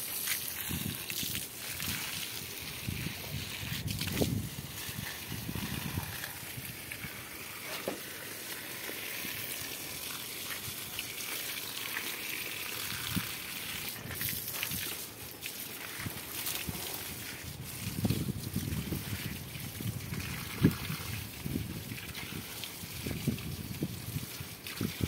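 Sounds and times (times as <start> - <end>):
hose water splashing: 0.0 - 25.0.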